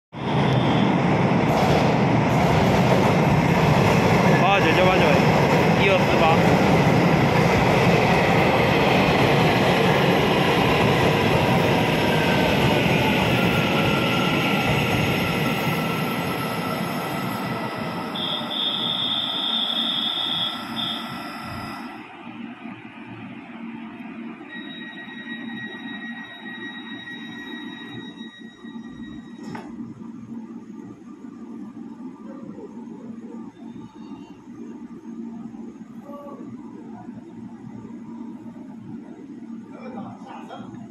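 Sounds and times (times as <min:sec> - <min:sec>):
electric train rumble: 0:00.2 - 0:40.9
station hum with high whines: 0:17.7 - 0:40.9.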